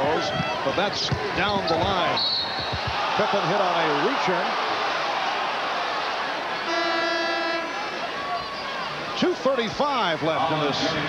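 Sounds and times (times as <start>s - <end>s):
arena crowd noise: 0.0s - 11.0s
arena horn buzzing: 6.6s - 7.9s.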